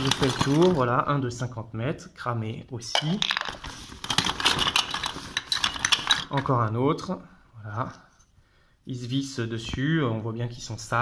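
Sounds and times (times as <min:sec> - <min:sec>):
plastic and metal pieces clattering: 0:00.0 - 0:00.9, 0:02.9 - 0:06.5.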